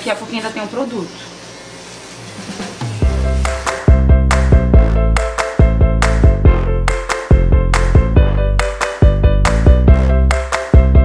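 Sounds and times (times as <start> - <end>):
electric nail drill sanding: 0.6 - 3.9.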